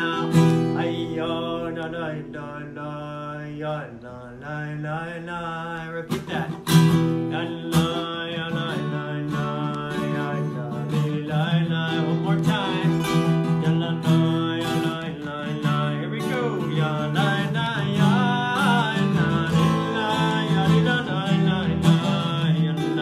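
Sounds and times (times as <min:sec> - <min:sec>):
acoustic guitar strumming: 0:00.0 - 0:23.0
man singing: 0:00.0 - 0:23.0.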